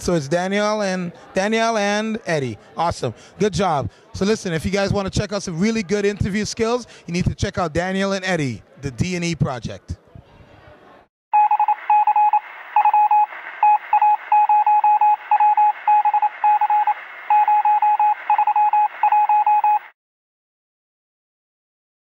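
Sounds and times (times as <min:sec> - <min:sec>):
electronic morse beeps: 0:11.4 - 0:19.9.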